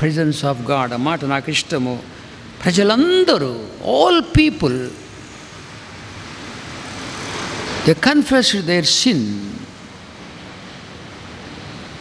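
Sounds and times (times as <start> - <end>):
steady rushing noise: 0.8 - 12.0.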